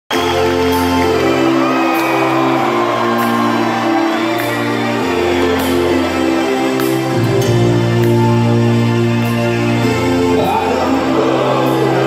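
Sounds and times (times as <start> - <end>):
crowd cheering and shouting: 0.1 - 12.0.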